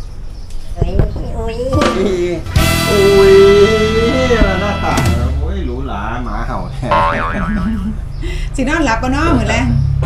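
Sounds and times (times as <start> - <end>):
light background music: 1.8 - 6.4
cartoon boing sound effect: 6.9 - 7.8.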